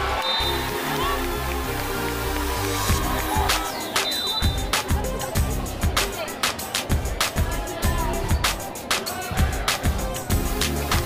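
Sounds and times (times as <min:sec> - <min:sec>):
loud music with deep bass: 0:00.0 - 0:11.0.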